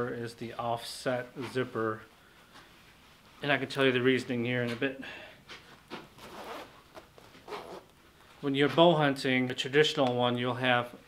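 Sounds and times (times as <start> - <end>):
fabric rustling: 5.5 - 9.0
zipper noise: 5.9 - 8.0.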